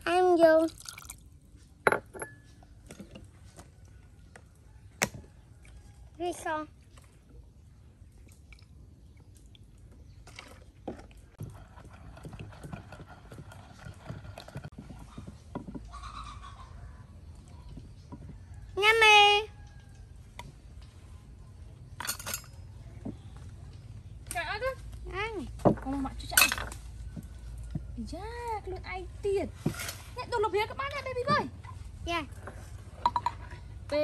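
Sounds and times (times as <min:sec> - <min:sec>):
wet pounding and stirring: 0:09.9 - 0:18.8.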